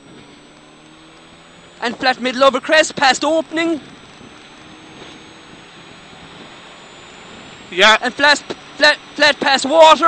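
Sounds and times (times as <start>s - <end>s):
faint high whine: 0.0s - 10.0s
rally car engine accelerating: 0.0s - 10.0s.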